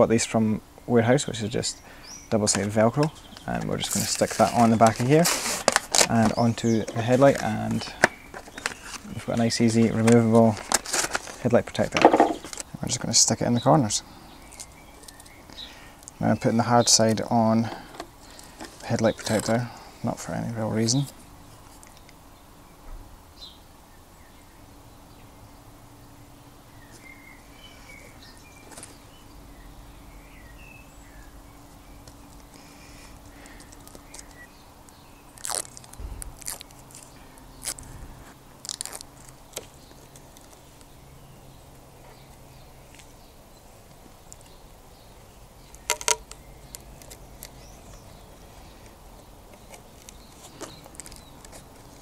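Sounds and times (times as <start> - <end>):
plastic clicks and crackles: 45.7 - 48.0, 48.8 - 52.0
sharp plastic clicks: 45.7 - 48.0.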